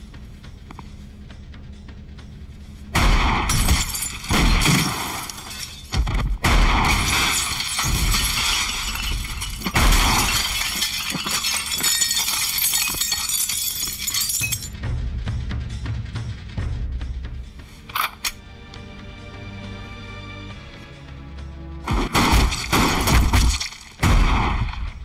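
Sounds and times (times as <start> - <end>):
glass bottles shattering: 3.5 - 6.0, 6.9 - 14.7, 22.4 - 24.0.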